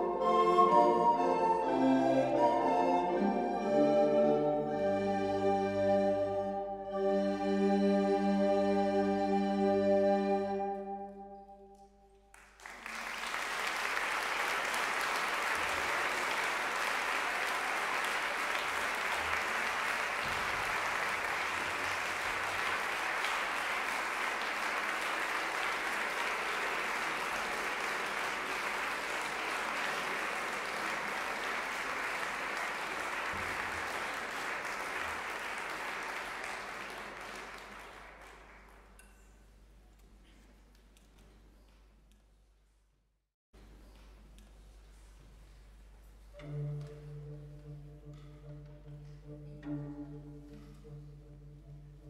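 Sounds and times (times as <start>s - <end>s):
audience applauding: 12.1s - 39.1s.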